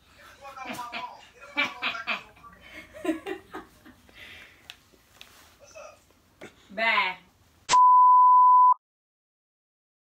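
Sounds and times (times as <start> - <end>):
steady electronic beep: 7.7 - 8.8.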